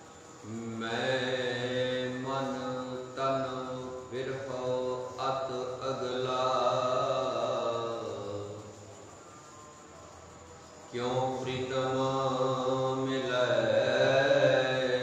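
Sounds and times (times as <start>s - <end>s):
man chanting: 0.4s - 8.8s, 10.9s - 15.0s.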